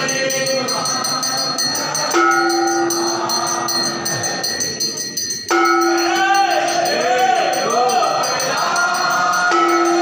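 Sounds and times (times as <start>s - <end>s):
small metal bells jingling: 0.0s - 10.0s
temple bell ringing: 0.0s - 10.0s.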